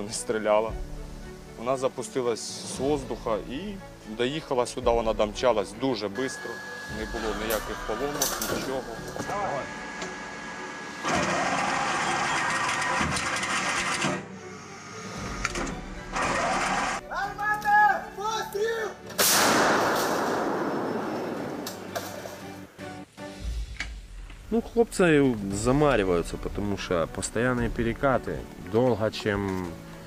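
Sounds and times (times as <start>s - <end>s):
gun firing loud blast: 19.2s - 22.0s.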